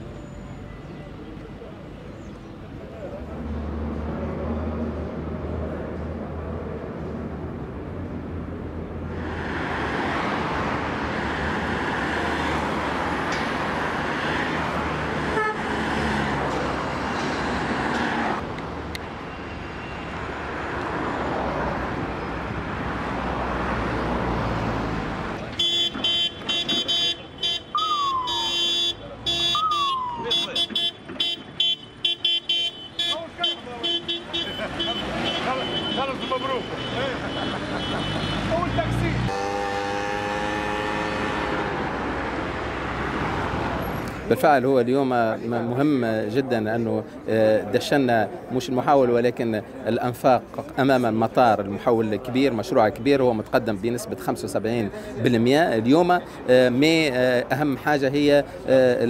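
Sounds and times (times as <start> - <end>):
passing cars rushing: 2.6 - 47.3
car horns blasting: 15.3 - 15.8, 25.5 - 41.7.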